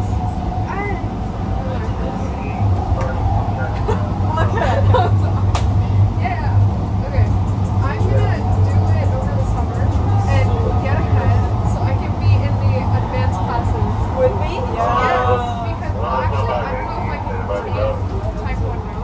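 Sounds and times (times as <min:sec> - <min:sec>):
indistinct voices chattering: 0:00.0 - 0:19.0
light rail steady hum: 0:00.0 - 0:19.0.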